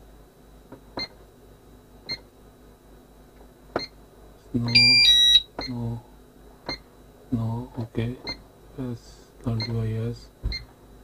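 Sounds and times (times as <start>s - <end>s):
keypad beeping: 4.7s - 5.7s.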